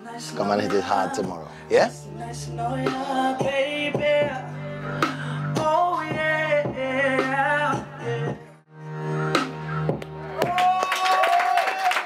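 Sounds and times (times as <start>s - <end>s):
music playing: 0.0s - 12.0s
small group clapping: 10.0s - 12.0s
person holding high cheering note: 10.4s - 12.0s.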